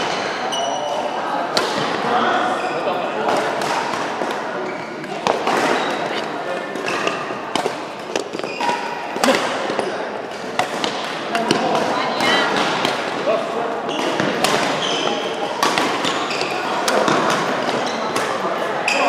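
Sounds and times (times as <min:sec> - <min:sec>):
rackets hitting shuttlecock: 0:03.2 - 0:19.0.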